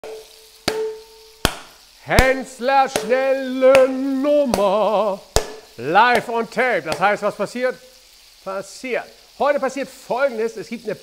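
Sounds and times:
metal mixing bowl knocked: 0.0 - 1.6.

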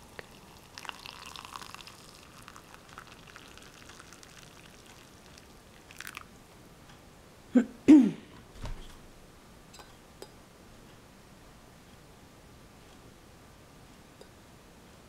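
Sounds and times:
water pouring into cup: 0.0 - 6.3.

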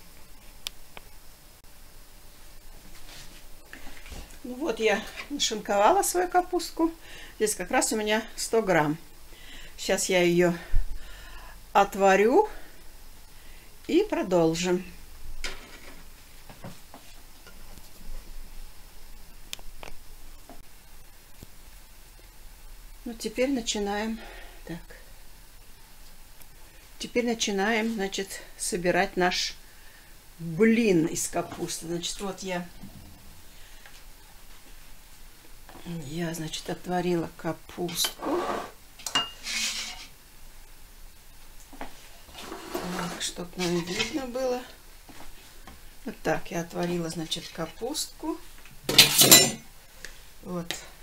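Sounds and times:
dishes scraping on worktop: 37.9 - 40.1
dishes clinking: 39.0 - 40.0, 48.9 - 49.6.

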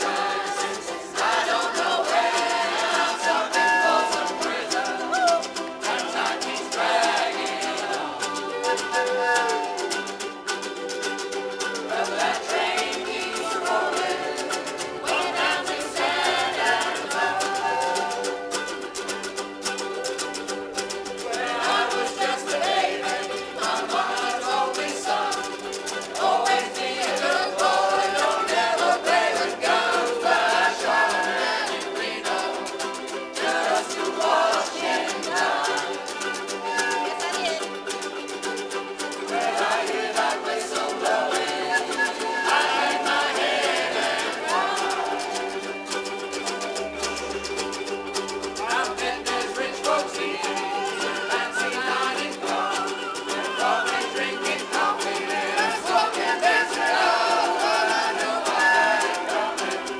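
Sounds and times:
ukuleles strumming: 0.0 - 59.9.

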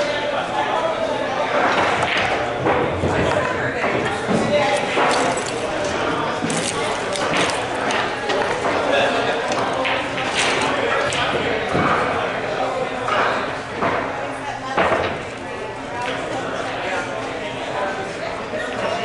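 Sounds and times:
indistinct chatter: 0.0 - 19.0
pool balls clicking: 1.4 - 17.3.

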